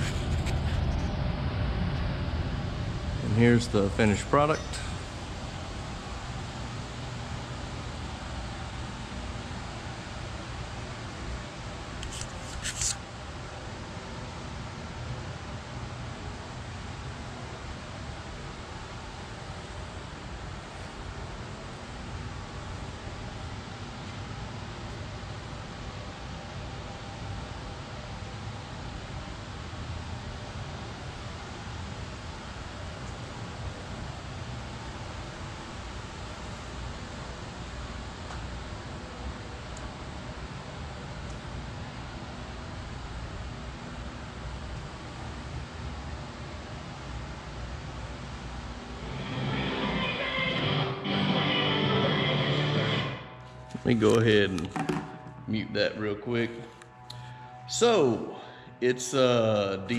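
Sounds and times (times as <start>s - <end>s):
fan rushing air with low rumble: 0.0s - 59.9s.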